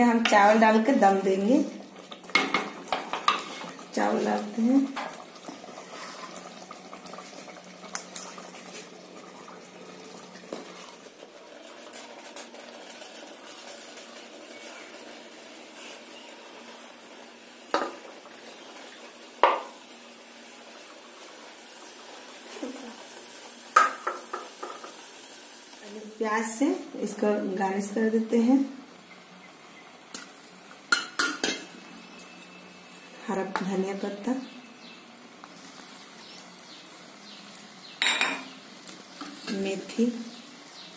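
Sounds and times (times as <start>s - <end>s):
pot simmering hiss: 0.0s - 40.9s.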